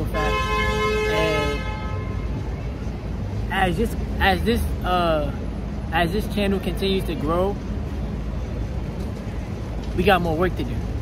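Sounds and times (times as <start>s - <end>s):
vehicle horn: 0.0s - 2.4s
city traffic rumble: 0.0s - 11.0s.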